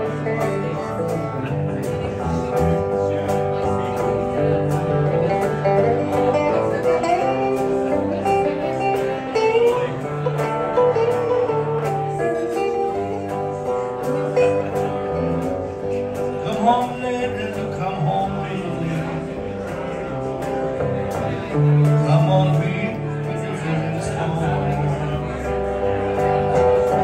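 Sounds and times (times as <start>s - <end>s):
electric guitars playing: 0.0s - 27.0s.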